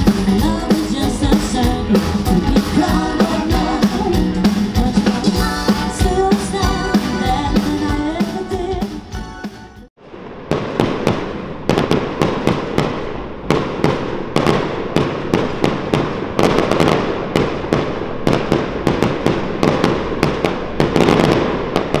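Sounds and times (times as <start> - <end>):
fireworks banging: 10.0 - 22.0
fireworks crackle: 10.0 - 22.0.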